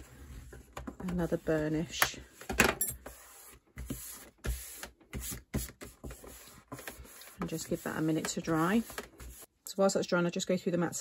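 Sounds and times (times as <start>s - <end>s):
hands smoothing card: 3.0s - 9.5s.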